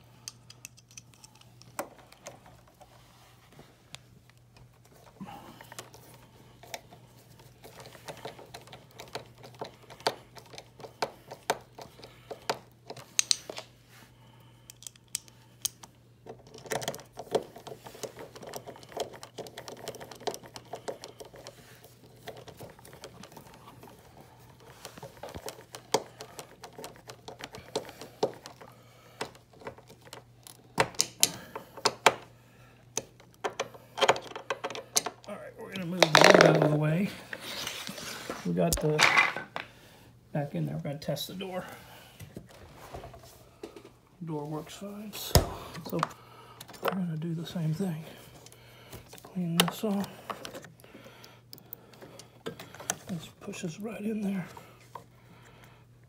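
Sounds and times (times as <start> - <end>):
screwdriver clicks and scrapes: 0.2 - 2.4.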